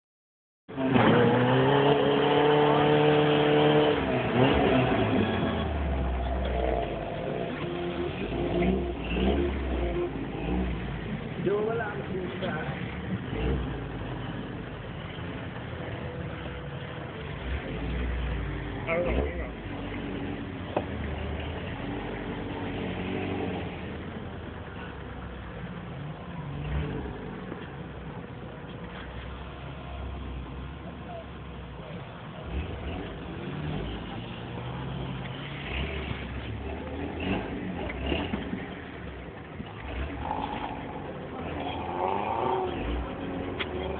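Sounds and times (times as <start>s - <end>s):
engine revving hard: 0.7s - 10.9s, 32.4s - 38.7s, 39.8s - 43.9s
vehicle engine driving over snow: 0.7s - 43.9s.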